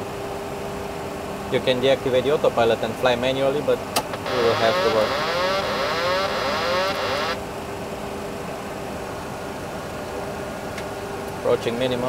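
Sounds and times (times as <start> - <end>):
faint steady hum: 4.1 - 8.6
warbling warning alarm: 4.2 - 7.4
simulated engine and airflow: 4.2 - 7.5.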